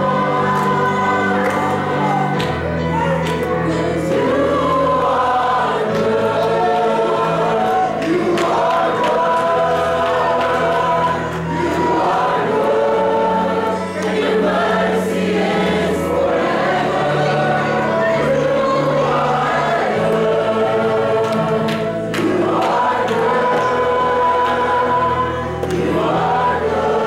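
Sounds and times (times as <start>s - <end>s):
youth choir singing: 0.0s - 27.0s.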